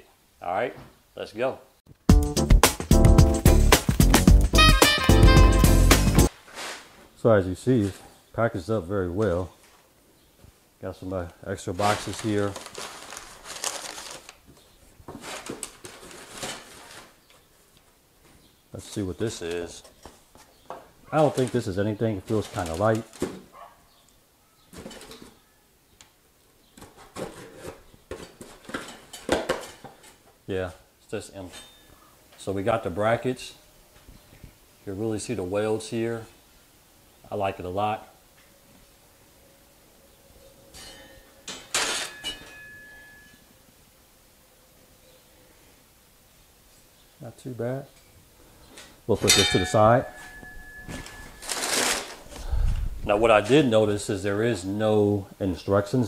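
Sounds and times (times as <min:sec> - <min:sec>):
cardboard tearing: 0:11.8 - 0:14.4, 0:51.4 - 0:52.4
steel brackets scraping: 0:40.8 - 0:43.4, 0:49.1 - 0:52.3.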